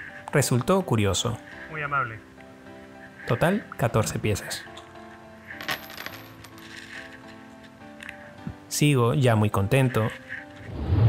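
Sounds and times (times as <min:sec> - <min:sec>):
background music: 0:00.0 - 0:11.0
coins clinking: 0:05.5 - 0:07.4.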